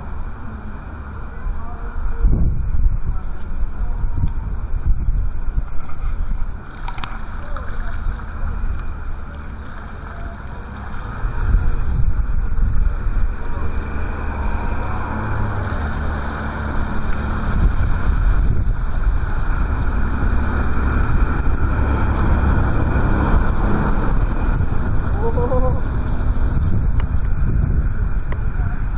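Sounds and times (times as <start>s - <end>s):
wind buffeting microphone: 0.0s - 28.9s.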